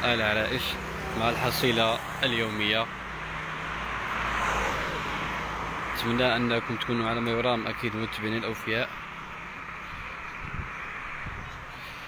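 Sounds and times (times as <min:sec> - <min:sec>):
car driving past: 0:03.0 - 0:06.2.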